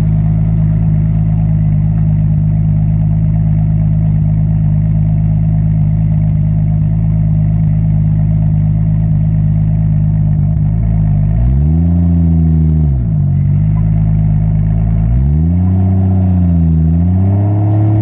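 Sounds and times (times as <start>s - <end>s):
car engine idling: 0.0s - 18.0s.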